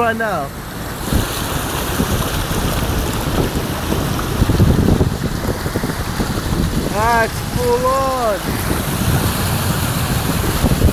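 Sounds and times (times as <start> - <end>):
water sloshing around car: 0.0 - 10.9
wind buffeting microphone: 0.5 - 10.9.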